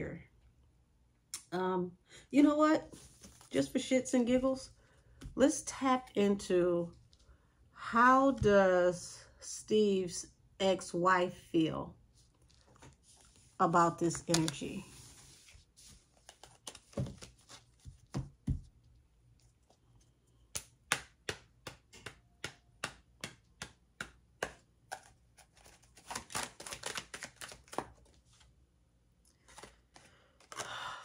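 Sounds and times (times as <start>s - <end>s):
cards being shuffled: 12.3s - 19.8s, 23.2s - 28.5s, 29.3s - 30.7s.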